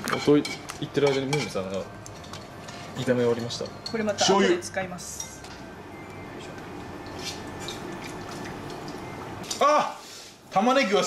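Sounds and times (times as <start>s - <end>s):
chopsticks scraping metal frying pan: 0.0s - 1.6s.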